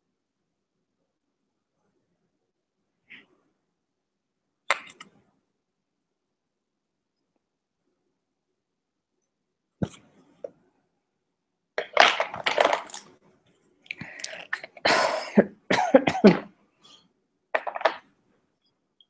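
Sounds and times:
person coughing: 0:14.7 - 0:16.5.

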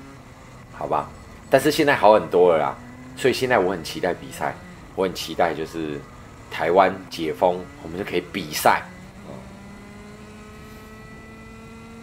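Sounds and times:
kart engine at high revs: 0:00.0 - 0:12.0.

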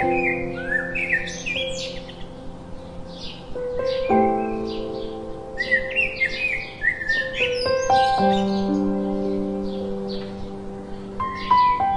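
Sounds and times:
soft background music: 0:00.0 - 0:11.9
sparrows chirping: 0:00.0 - 0:11.9.

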